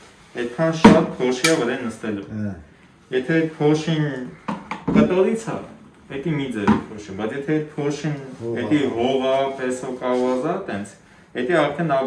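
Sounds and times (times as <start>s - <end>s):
man talking: 0.4s - 12.0s.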